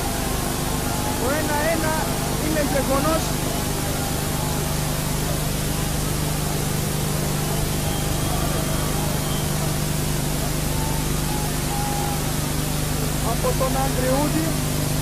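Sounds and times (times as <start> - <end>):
tape hiss: 0.0 - 15.0.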